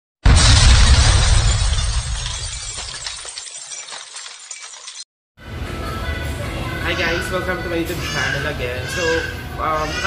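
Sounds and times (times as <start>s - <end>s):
glass breaking crash: 0.2s - 5.1s.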